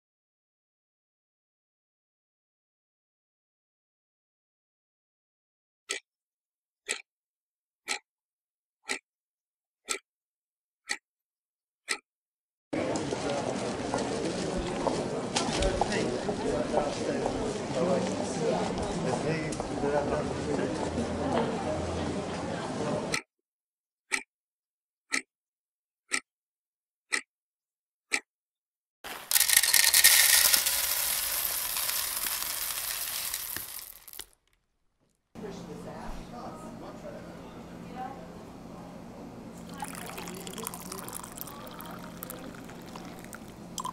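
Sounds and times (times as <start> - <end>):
watch ticking: 5.9 - 6.1, 6.8 - 7.1, 7.8 - 8.1, 8.8 - 9.0, 9.8 - 10.0, 10.8 - 11.0, 11.8 - 12.0, 24.1 - 24.3, 25.1 - 25.3, 26.1 - 26.3, 27.1 - 27.3, 28.1 - 28.3
coffee beans pouring into bowl: 29.1 - 34.3, 39.8 - 43.9.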